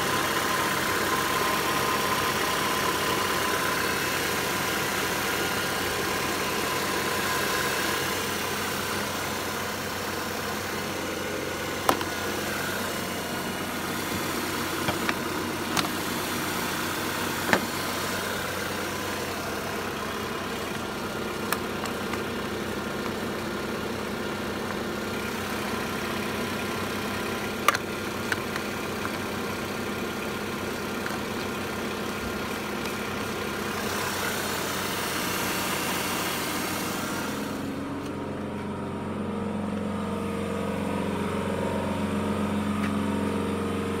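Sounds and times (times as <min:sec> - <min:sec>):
car engine idling: 0:00.0 - 0:44.0.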